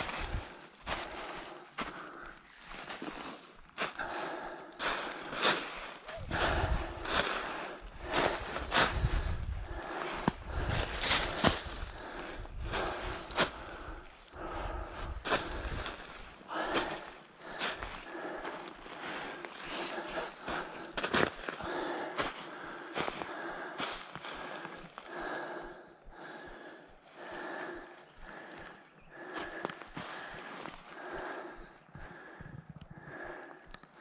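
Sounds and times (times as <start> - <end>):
person breathing hard: 0.0 - 34.0
footsteps through dry leaves: 4.8 - 14.1.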